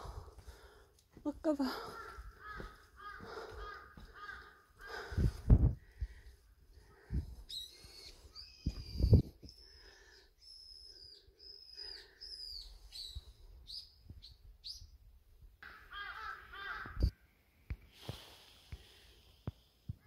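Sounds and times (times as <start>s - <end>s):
birds chattering: 1.7s - 5.2s
birds whistling calls: 7.5s - 14.9s.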